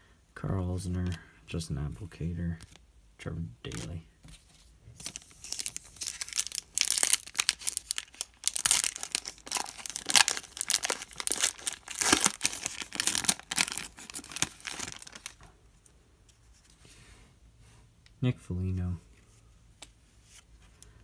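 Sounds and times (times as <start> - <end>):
foil wrapper crinkling: 5.0 - 15.4.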